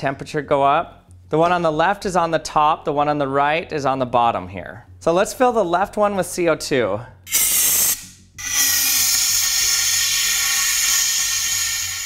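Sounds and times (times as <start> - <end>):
compressed gas hissing: 7.3 - 12.0.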